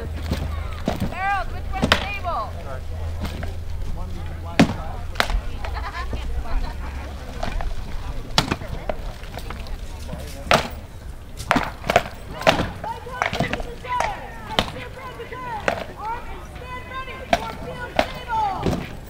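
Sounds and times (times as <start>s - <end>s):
swords striking shields: 0.2s - 2.2s, 4.6s - 5.7s, 10.3s - 10.8s, 11.4s - 14.9s, 15.6s - 16.0s, 17.3s - 19.0s.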